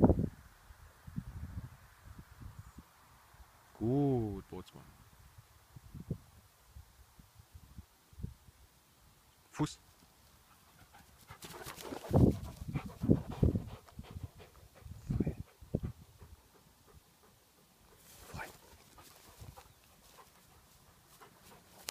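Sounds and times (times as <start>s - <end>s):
dog panting: 10.4s - 21.9s.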